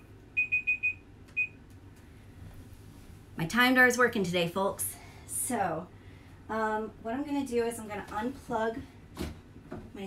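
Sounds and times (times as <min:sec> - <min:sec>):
digital timer beep: 0:00.4 - 0:01.6.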